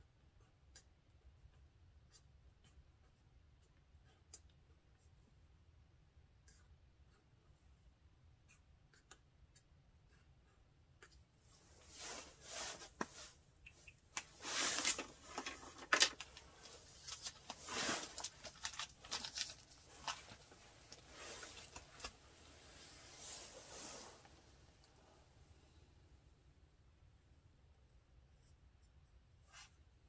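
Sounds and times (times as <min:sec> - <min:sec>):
writing tools rustling and scraping: 0:08.5 - 0:25.0
pen strokes on paper: 0:11.5 - 0:13.4.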